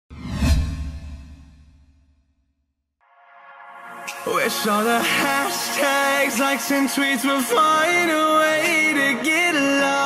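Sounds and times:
whoosh: 0.1 - 2.3.

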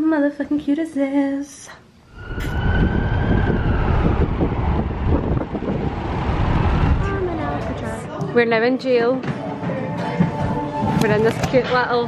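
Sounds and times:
wailing tone falling in pitch: 2.1 - 5.1
dense rumbling noise: 2.1 - 8.1.

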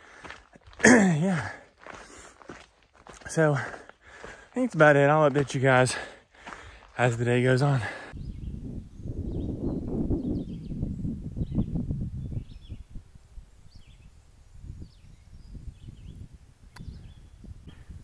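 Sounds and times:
wind buffeting microphone: 8.1 - 18.0.

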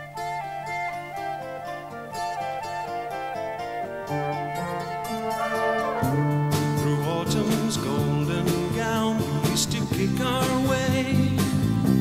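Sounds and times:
orchestral strings and horn: 3.9 - 8.4
steady bass: 5.8 - 12.0.

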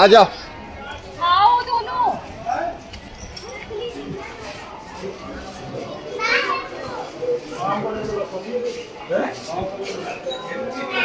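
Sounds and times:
voices chattering: 0.0 - 11.0
children's voices: 3.3 - 8.3, 10.5 - 11.0.

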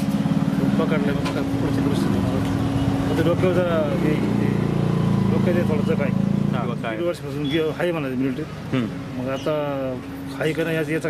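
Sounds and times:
man speaking: 5.3 - 11.0.

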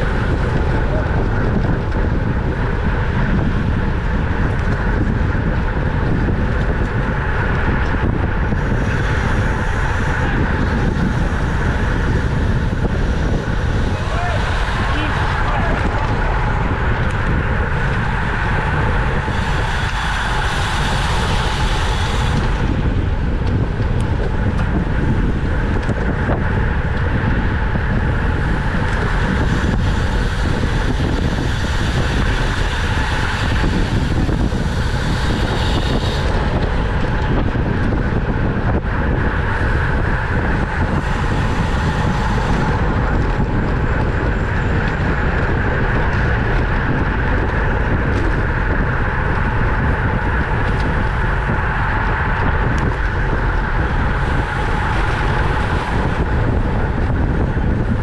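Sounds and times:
road and tyre rumble: 0.0 - 58.0
wind rushing over microphone: 0.0 - 58.0.

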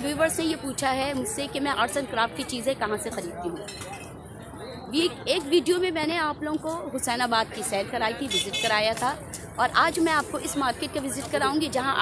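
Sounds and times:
woman speaking: 0.0 - 3.6, 4.9 - 12.0
market crowd bustle: 0.0 - 12.0.

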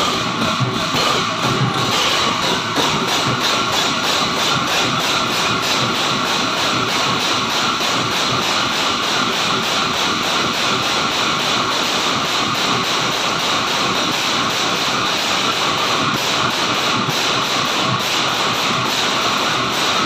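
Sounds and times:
drums beating: 0.0 - 20.0
large cymbals clashing: 0.0 - 20.0.

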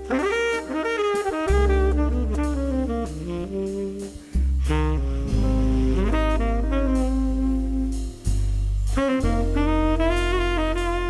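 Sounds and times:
saxophone jazz ballad: 0.0 - 11.0
sustained bass line: 1.5 - 11.0.

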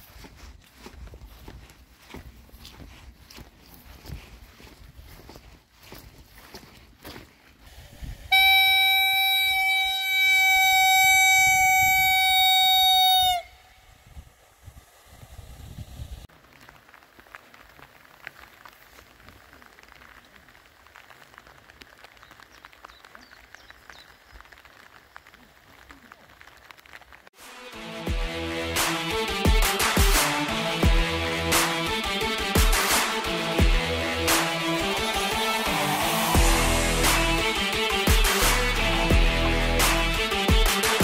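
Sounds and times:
long horn blast: 8.3 - 13.8.

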